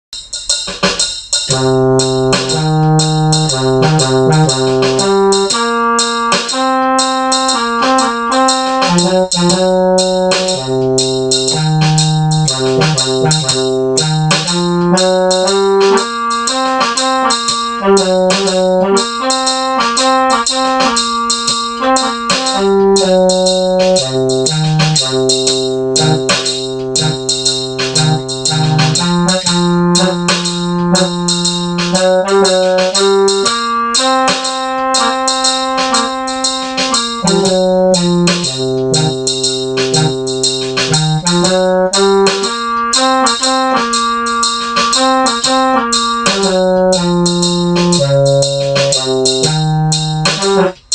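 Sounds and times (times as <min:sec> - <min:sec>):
steady drum beat: 0:00.2 - 0:50.9
electronic keyboard blues chords: 0:01.5 - 0:50.9.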